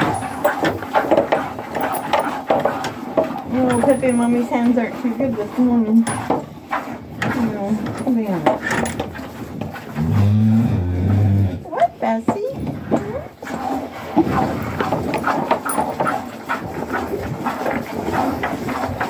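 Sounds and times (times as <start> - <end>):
cow mooing: 10.0 - 11.6.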